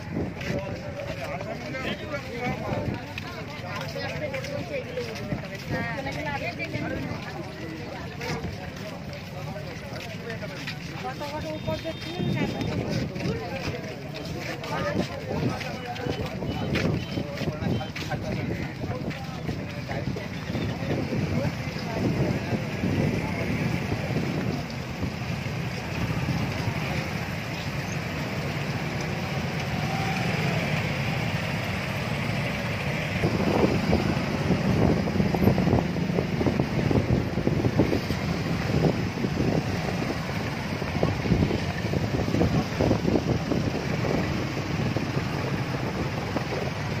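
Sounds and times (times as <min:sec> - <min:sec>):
crowd voices: 0:00.0 - 0:47.0
motorcycle engines running: 0:00.0 - 0:47.0.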